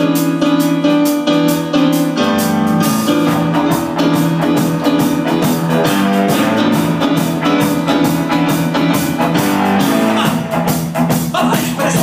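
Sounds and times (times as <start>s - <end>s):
electronic keyboard: 0.0s - 11.3s
electric guitar: 0.0s - 11.4s
bass guitar: 0.0s - 12.0s
drums: 0.0s - 12.0s.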